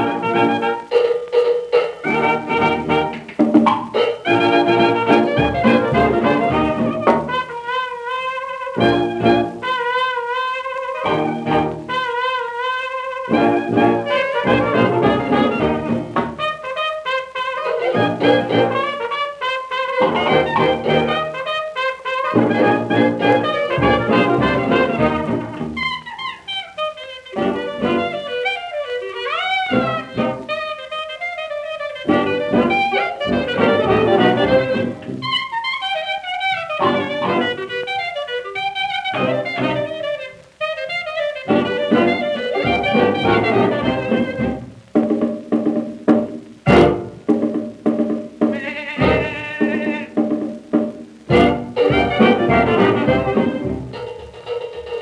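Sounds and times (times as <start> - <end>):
alto saxophone: 0.0 - 45.0, 46.5 - 47.3, 48.4 - 54.1
clarinet: 0.0 - 55.0
drums: 0.0 - 55.0
piano: 0.0 - 55.0
trombone: 0.0 - 55.0.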